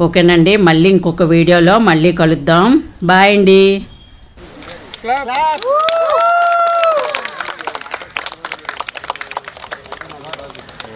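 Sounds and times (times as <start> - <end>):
small crowd clapping: 4.9 - 10.9
faint voices: 6.6 - 10.9.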